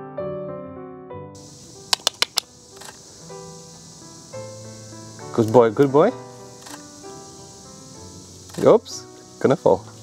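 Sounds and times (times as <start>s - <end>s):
soft background piano music: 0.0s - 10.0s
camera shutter firing: 1.9s - 3.0s, 6.6s - 6.9s.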